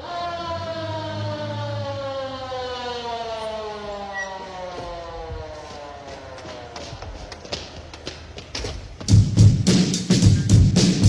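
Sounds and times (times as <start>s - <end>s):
siren-like wail sliding down: 0.0s - 7.2s.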